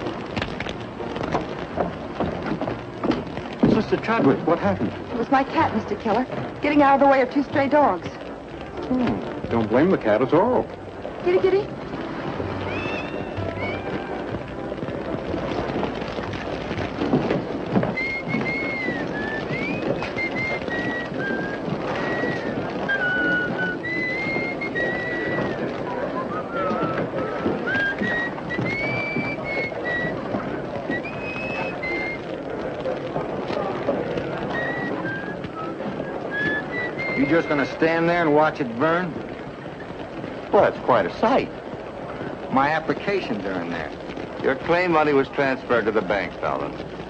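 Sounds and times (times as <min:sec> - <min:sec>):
fire crackling: 0:00.0 - 0:47.0.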